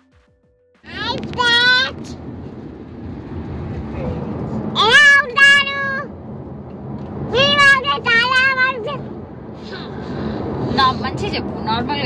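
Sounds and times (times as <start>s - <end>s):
car cabin road rumble: 0.8s - 12.0s.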